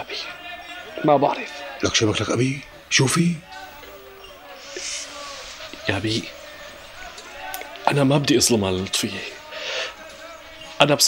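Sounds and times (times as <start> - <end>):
man's voice: 0.0 - 11.0
soft breathy hiss: 9.5 - 10.0.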